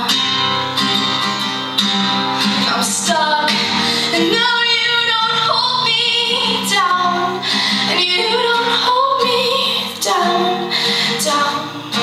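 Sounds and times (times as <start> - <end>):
acoustic guitar: 0.0 - 12.0
girl singing: 2.7 - 12.0.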